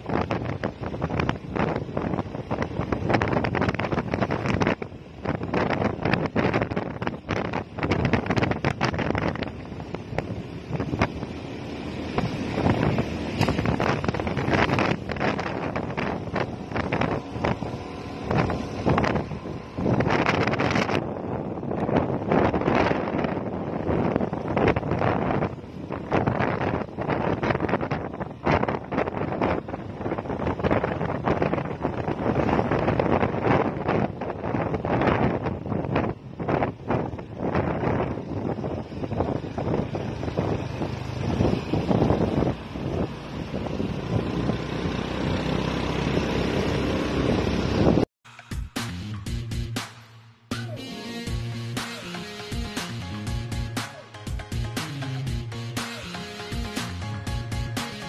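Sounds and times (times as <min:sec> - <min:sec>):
wind buffeting microphone: 0:00.0 - 0:48.1
motorcycle engine running: 0:00.0 - 0:49.8, 0:51.3 - 0:58.0.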